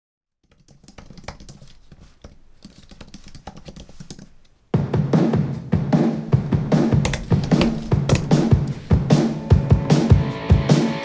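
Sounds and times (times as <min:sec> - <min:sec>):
typing on computer keyboard: 0:00.4 - 0:04.5, 0:06.3 - 0:09.4.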